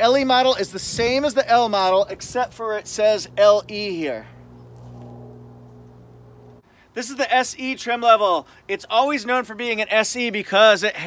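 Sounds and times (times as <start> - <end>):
low mechanical hum: 0.0 - 6.6
even tones: 2.6 - 6.6.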